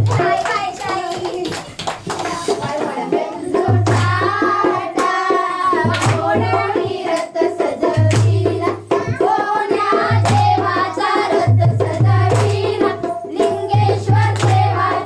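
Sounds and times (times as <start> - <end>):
hand claps: 0.0 - 3.0, 3.8 - 6.5, 7.1 - 7.4, 8.0 - 8.4, 10.2 - 10.6, 11.9 - 12.7, 14.2 - 15.0
women and girls singing: 0.0 - 15.0.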